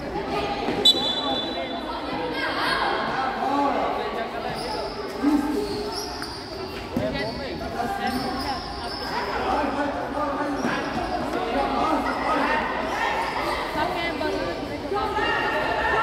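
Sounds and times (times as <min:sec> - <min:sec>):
players and spectators shouting: 0:14.9 - 0:16.0.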